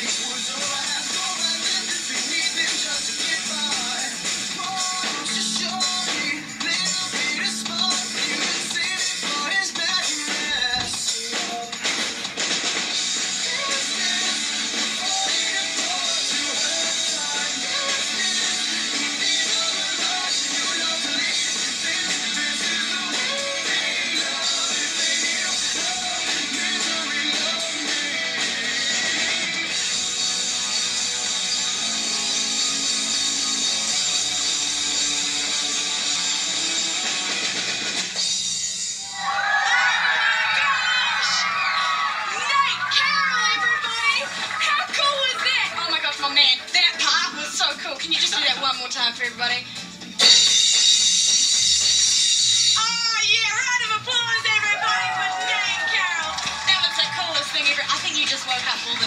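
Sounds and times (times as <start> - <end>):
drum kit played hard: 0.0 - 38.9, 42.4 - 59.0
rock music through tv speakers: 0.0 - 59.0
children cheering and clapping: 39.0 - 47.5, 53.6 - 59.0.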